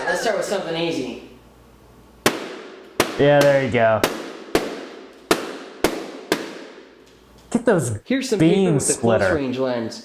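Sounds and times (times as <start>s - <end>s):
balloons popping: 2.2s - 7.0s.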